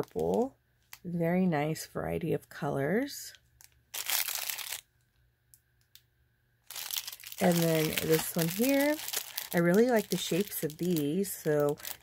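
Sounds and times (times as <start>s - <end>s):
plastic bag of beads crinkling: 0.0s - 1.1s, 3.4s - 4.9s, 6.6s - 12.0s.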